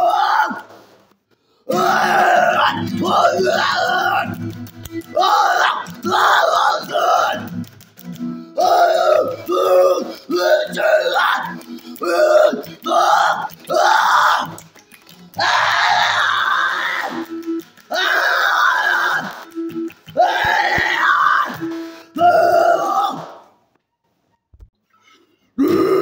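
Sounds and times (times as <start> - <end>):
acoustic guitar strumming: 1.7 - 13.8.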